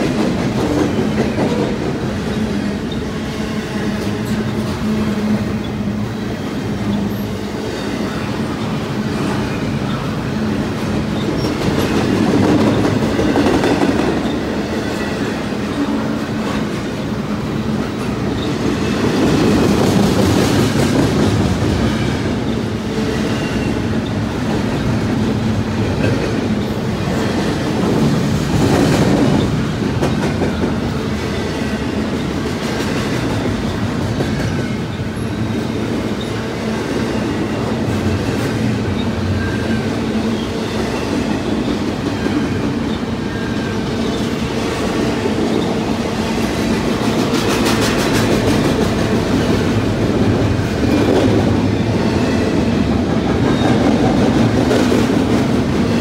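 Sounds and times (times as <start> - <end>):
freight train wheels clattering: 0.0 - 56.0.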